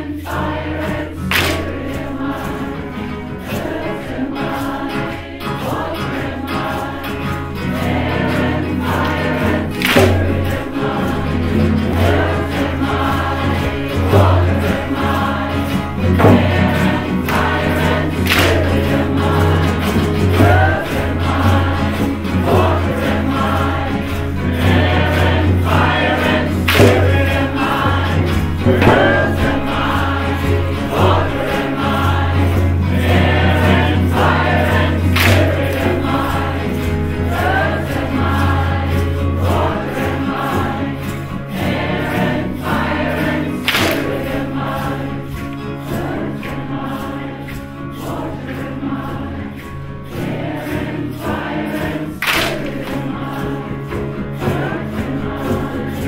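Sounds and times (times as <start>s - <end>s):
group chanting: 0.0s - 56.0s
sharp knocks: 18.2s - 19.0s, 26.7s - 30.1s, 35.2s - 36.0s, 43.7s - 44.2s.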